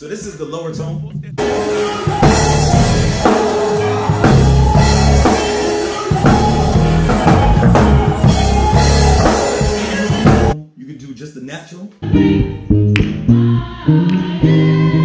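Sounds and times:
drum kit: 0.1s - 10.6s
electric bass with octave effect: 1.1s - 5.4s, 6.2s - 10.6s, 12.0s - 15.0s.

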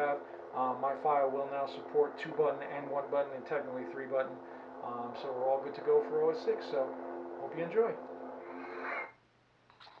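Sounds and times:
lightsaber hum: 0.0s - 9.2s.

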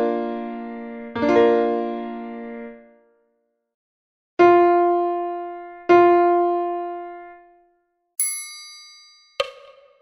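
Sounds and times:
high bell-like click-track ding: 8.2s - 10.0s.

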